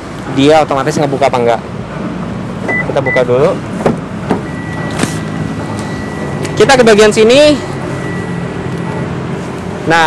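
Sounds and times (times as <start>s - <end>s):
faint steady high tone: 5.8s - 9.1s.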